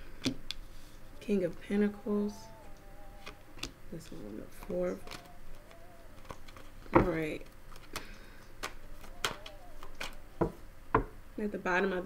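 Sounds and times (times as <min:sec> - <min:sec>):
woman humming faintly: 0:01.1 - 0:06.3, 0:08.7 - 0:10.6
cards clicking: 0:02.6 - 0:10.2.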